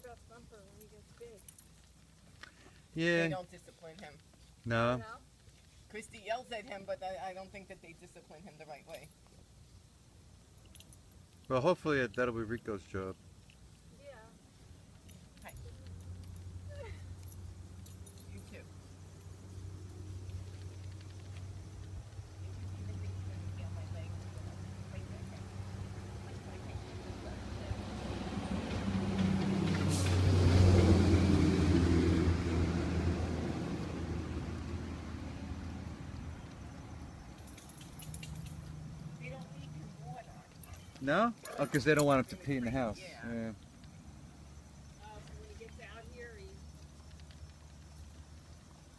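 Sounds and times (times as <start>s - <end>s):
metal collar tags jingling: 0.0s - 2.3s, 10.5s - 19.6s, 37.1s - 43.0s.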